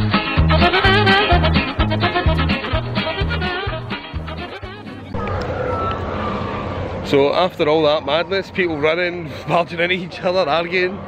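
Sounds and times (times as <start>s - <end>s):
crowd rumble and hiss: 4.8s - 11.0s.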